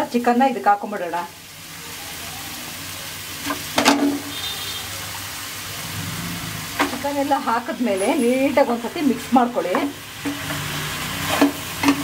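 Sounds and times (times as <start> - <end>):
chicken sizzling in a pan: 0.0 - 12.0.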